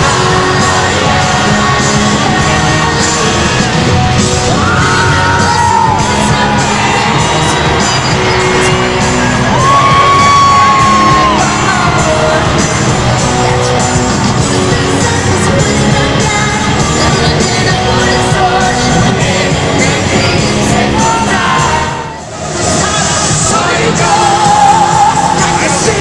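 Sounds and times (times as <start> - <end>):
live pop band music: 0.0 - 26.0
singer holding long notes: 0.0 - 26.0.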